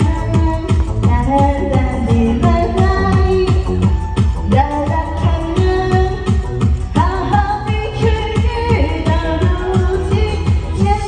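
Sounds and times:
amplified backing music: 0.0s - 11.0s
woman singing pop song: 0.0s - 11.0s.

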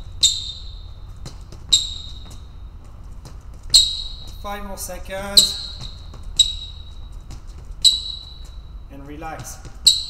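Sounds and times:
faint foot taps: 0.0s - 10.0s
sneakers squeaking on floor: 0.0s - 10.0s.

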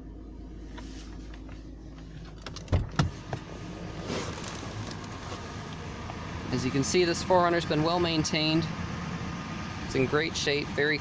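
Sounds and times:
car cabin low hum: 0.0s - 11.0s
rustling: 3.9s - 5.6s.

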